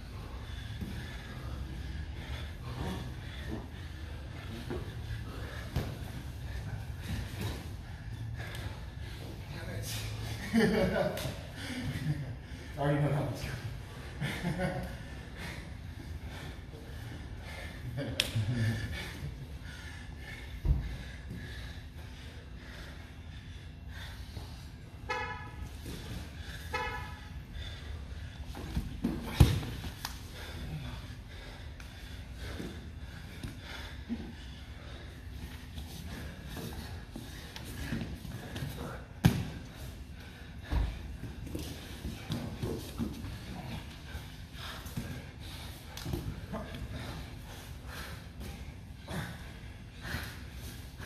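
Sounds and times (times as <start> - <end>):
short honk-like tones: 25.1 - 25.6, 26.7 - 27.2.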